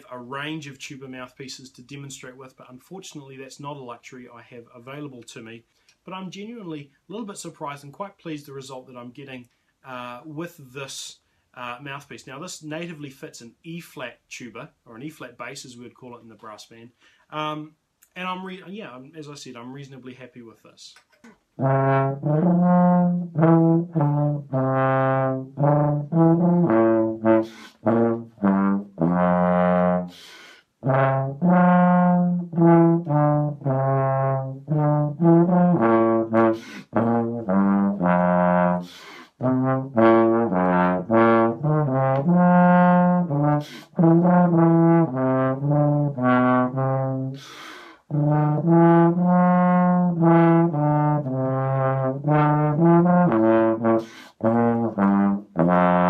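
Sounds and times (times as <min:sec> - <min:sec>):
low trombone notes: 0:21.6 - 0:30.1, 0:30.8 - 0:47.4, 0:48.1 - 0:56.0.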